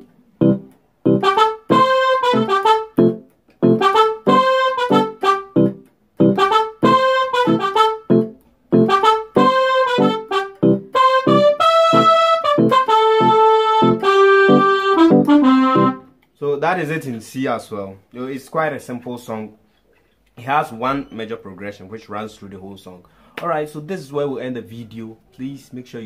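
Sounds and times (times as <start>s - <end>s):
keyboard playing chords: 0.0s - 16.2s.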